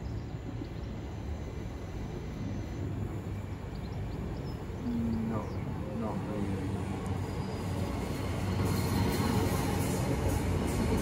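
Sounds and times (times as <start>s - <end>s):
faint bird chirps: 0.0s - 6.2s
train rumbling on rails: 0.0s - 11.0s.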